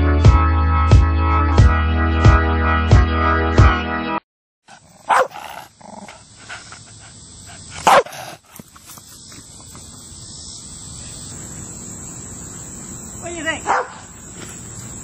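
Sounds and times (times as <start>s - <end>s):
dog barking: 4.9s - 5.7s, 7.8s - 8.4s, 13.6s - 14.0s.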